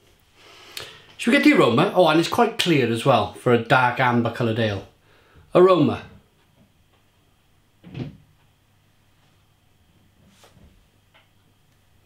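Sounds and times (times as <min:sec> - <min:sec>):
person sniffing: 0:00.4 - 0:01.1.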